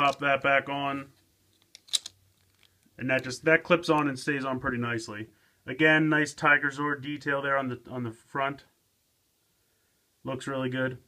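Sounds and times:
plastic armour clicking into place: 1.6 - 2.8.

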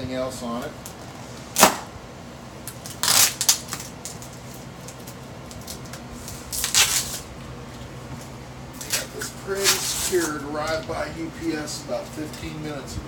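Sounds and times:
knife slitting packing tape: 2.7 - 7.3, 8.8 - 10.3.

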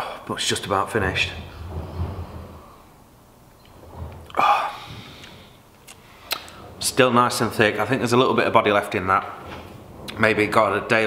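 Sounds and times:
breathy exhale: 4.4 - 6.7.

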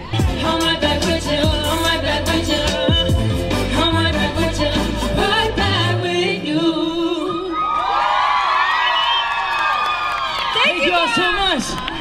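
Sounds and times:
concert crowd cheering and screaming: 7.2 - 12.0.

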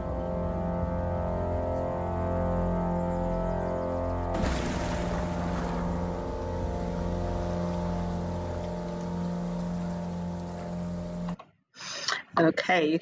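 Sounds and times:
sustained low chord music: 0.0 - 11.4.

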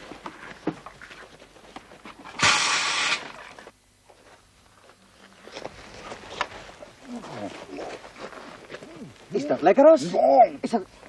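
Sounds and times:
loud hissing puff: 2.4 - 3.4.

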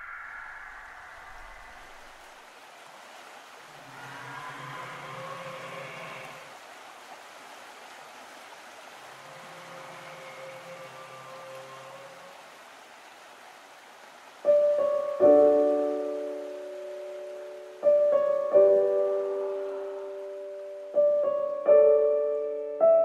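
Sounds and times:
creek water babbling over rocks: 1.0 - 21.6.

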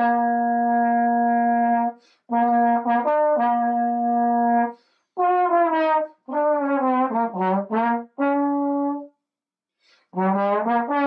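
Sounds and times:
slide trombone melody: 0.0 - 9.1, 10.1 - 11.0.

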